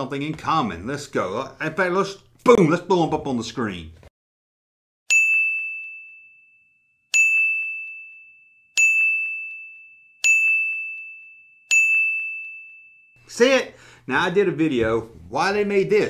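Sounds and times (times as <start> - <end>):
bell ding sound effect: 5.1 - 13.2.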